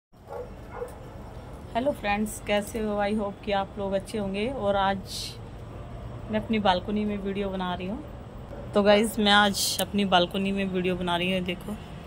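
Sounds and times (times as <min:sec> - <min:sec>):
faint dog barks: 0:00.2 - 0:01.0.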